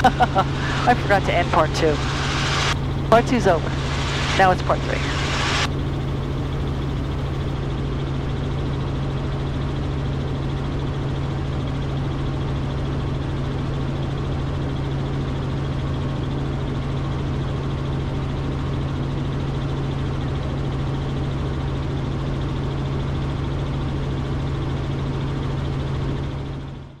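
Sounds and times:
helicopter engine and rotors droning: 0.0s - 27.0s.

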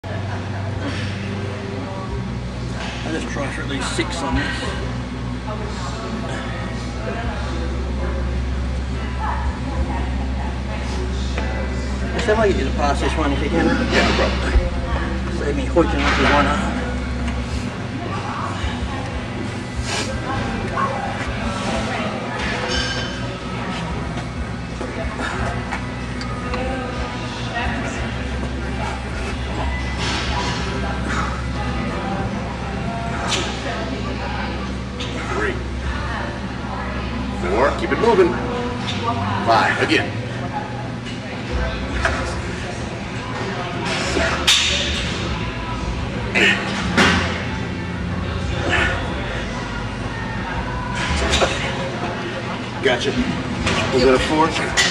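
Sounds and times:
indistinct voices: 0.0s - 54.9s
steady low hum: 0.0s - 54.9s.

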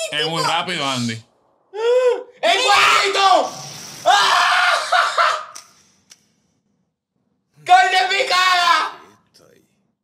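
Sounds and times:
people screaming in shock: 1.8s - 5.5s.

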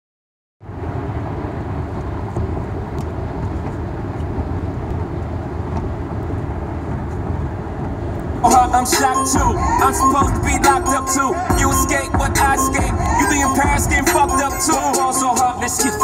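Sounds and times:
car engine and road rumble: 0.6s - 16.0s.

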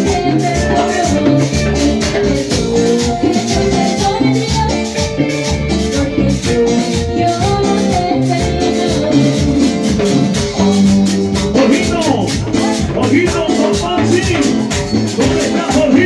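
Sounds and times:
live cumbia band playing: 0.0s - 16.0s.

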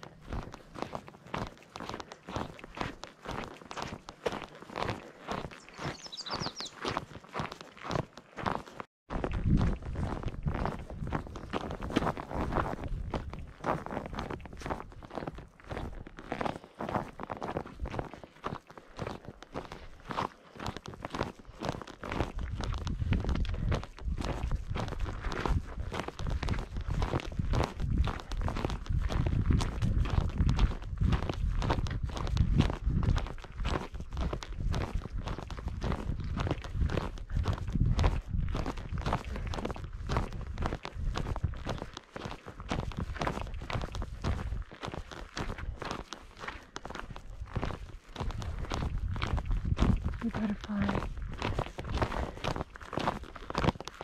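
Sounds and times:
footsteps on rocky dirt trail: 0.0s - 54.0s.

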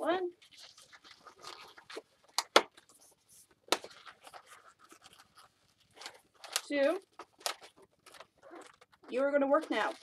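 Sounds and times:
balloon squeaking: 7.6s - 10.0s.

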